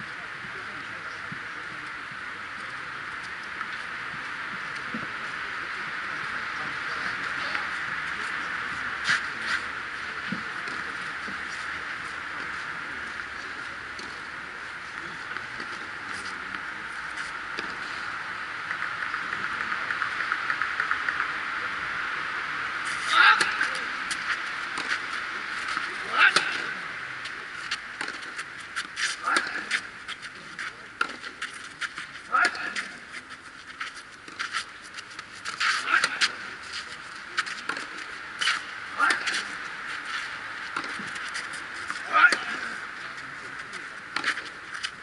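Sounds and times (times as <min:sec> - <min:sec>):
steady high hiss: 0:00.0 - 0:45.0
tennis racket hitting ball: 0:22.9 - 0:26.7, 0:27.7 - 0:33.0, 0:33.8 - 0:42.8, 0:43.6 - 0:45.0
ball bouncing: 0:28.0 - 0:29.8.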